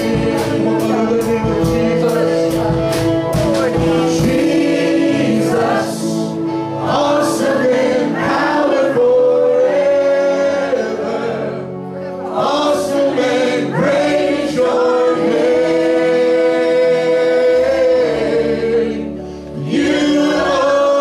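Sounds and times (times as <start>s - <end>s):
congregation and band singing: 0.0s - 21.0s.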